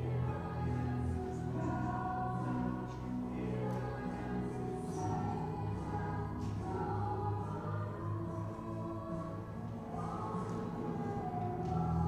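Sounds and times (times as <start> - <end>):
voices singing worship music: 0.0 - 12.0.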